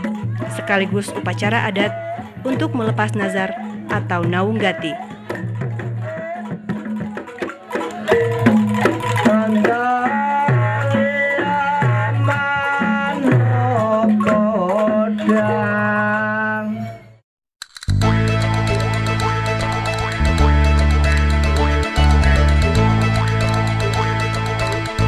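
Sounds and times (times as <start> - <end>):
drum strokes: 0.0 - 12.7, 17.6 - 25.0
person singing wavering: 7.8 - 17.2.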